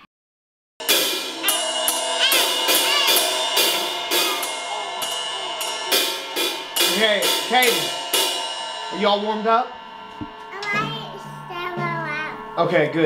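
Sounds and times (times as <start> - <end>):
cymbals ringing: 0.8 - 13.0
drum kit steady beat: 0.8 - 13.0.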